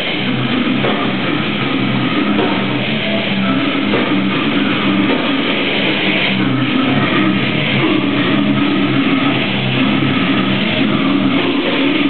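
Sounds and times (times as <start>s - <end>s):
death metal band playing live: 0.0s - 12.0s
distorted guitar chords: 0.0s - 12.0s.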